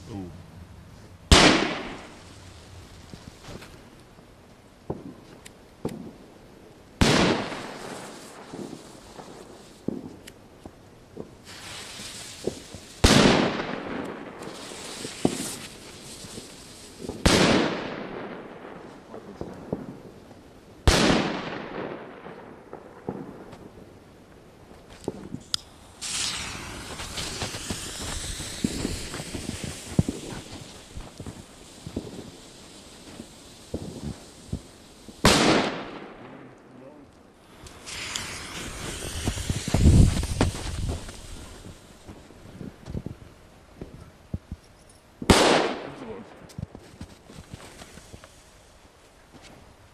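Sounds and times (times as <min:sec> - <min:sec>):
firecracker bang: 0:01.3 - 0:03.8, 0:07.0 - 0:10.2, 0:11.2 - 0:20.0, 0:20.9 - 0:22.3, 0:24.9 - 0:36.6, 0:37.4 - 0:42.8, 0:45.2 - 0:48.0
firecracker fuse hiss: 0:01.4 - 0:04.0, 0:07.1 - 0:10.4, 0:11.2 - 0:13.6, 0:14.2 - 0:17.7, 0:24.9 - 0:36.0, 0:37.4 - 0:43.2, 0:45.2 - 0:49.9
faint firecracker pops: 0:24.9 - 0:32.3, 0:37.6 - 0:43.2, 0:45.2 - 0:48.4.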